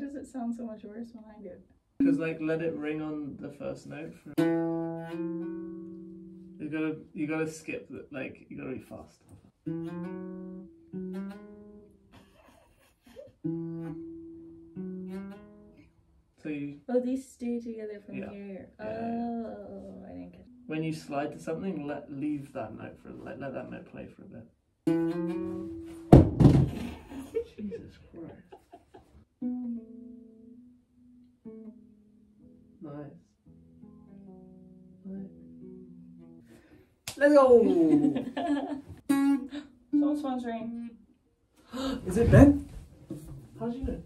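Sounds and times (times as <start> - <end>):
acoustic guitar notes: 2.0 - 8.5, 9.3 - 12.2, 13.4 - 16.1, 17.1 - 23.9, 24.8 - 27.3, 29.2 - 44.0
scratchy guitar string noise: 24.9 - 26.2.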